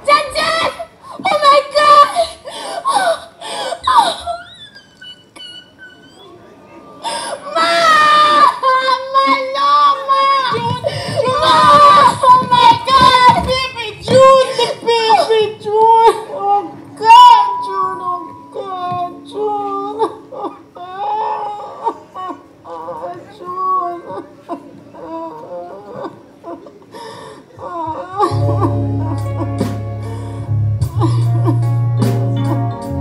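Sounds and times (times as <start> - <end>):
woman sobbing and wailing: 0.1 - 31.7.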